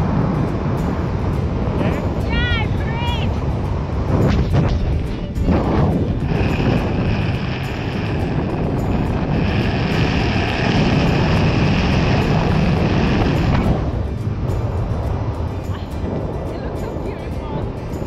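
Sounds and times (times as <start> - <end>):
wind rushing over microphone: 0.0 - 18.0.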